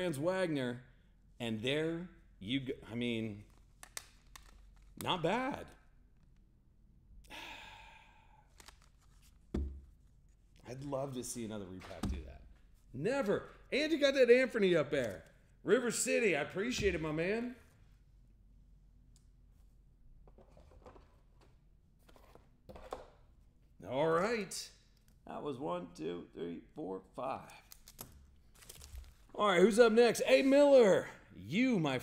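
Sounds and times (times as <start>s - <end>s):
person sighing: 7.2s - 8.6s.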